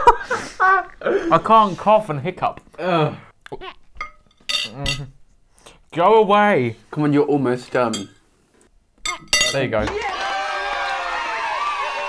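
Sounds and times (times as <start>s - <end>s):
fork clinking on plate: 4.0s - 5.1s, 9.0s - 9.6s.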